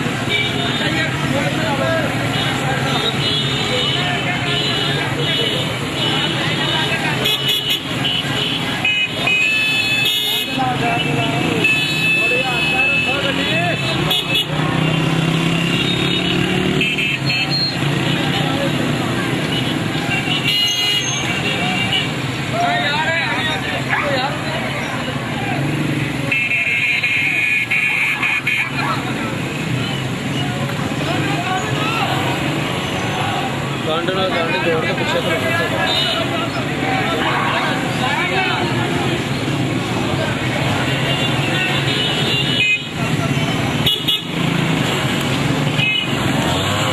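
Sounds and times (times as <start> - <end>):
car and motorcycle engines: 0.0 - 46.9
crowd voices: 0.0 - 46.9
vehicle horns honking: 0.2 - 1.1, 2.2 - 18.5, 19.4 - 22.2, 26.3 - 28.7, 35.1 - 36.5, 40.8 - 44.6, 45.7 - 46.9.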